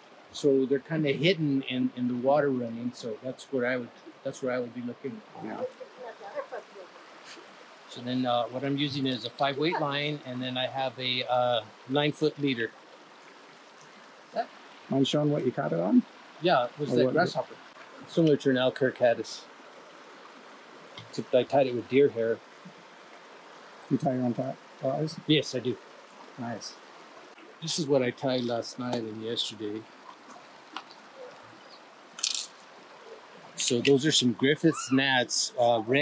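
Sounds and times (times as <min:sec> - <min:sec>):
creek running over rocks: 0:00.0 - 0:36.0
brief voice sound: 0:00.4 - 0:05.7, 0:08.0 - 0:12.7, 0:14.9 - 0:17.4, 0:18.1 - 0:19.4, 0:21.2 - 0:22.4, 0:23.9 - 0:25.8, 0:26.4 - 0:26.7, 0:27.6 - 0:29.8, 0:33.6 - 0:36.0
man speaking: 0:00.4 - 0:05.7, 0:07.9 - 0:12.7, 0:14.9 - 0:19.4, 0:21.0 - 0:22.4, 0:23.9 - 0:25.8, 0:26.4 - 0:26.7, 0:27.6 - 0:29.8, 0:33.6 - 0:36.0.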